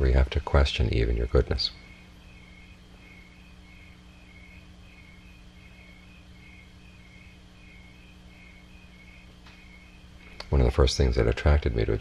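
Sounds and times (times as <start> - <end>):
insect chirping: 0.0 - 12.0
low steady hum: 0.0 - 12.0.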